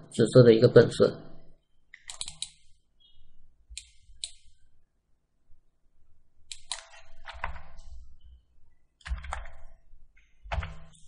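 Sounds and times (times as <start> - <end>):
computer mouse clicks: 1.9 - 2.7, 3.8 - 4.6, 6.5 - 7.9.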